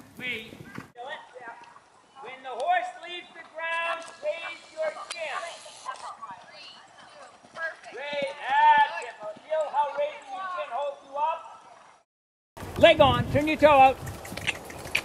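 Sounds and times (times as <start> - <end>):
indistinct voices talking: 1.2 - 11.7
horse hoofbeats on sand: 12.6 - 15.0.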